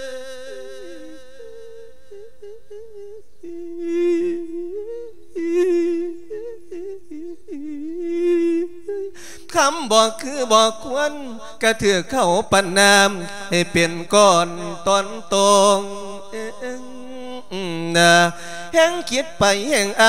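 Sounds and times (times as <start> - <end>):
man humming slow melody: 0.0 - 9.2.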